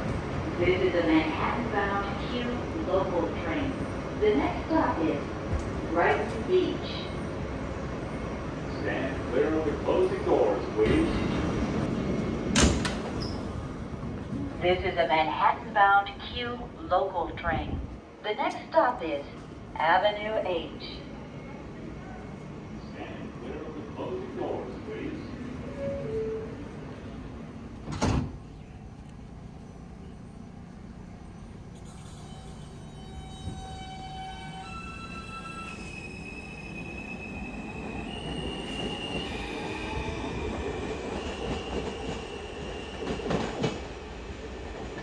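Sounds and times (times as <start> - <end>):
train low hum: 0.0 - 45.0
train doors closing thump: 12.4 - 13.5, 27.8 - 28.5
sliding doors thudding shut: 27.8 - 28.4
train motor whine: 30.0 - 36.9.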